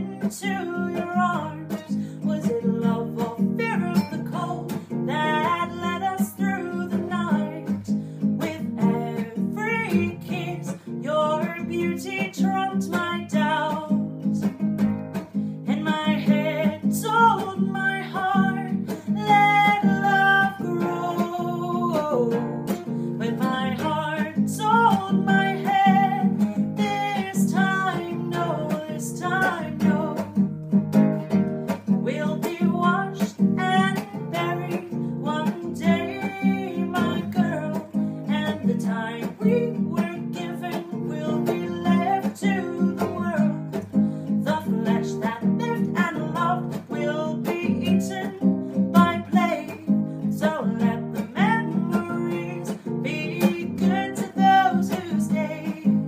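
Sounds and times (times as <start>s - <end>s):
strummed acoustic guitar: 0.0s - 56.0s
woman singing: 0.0s - 56.0s.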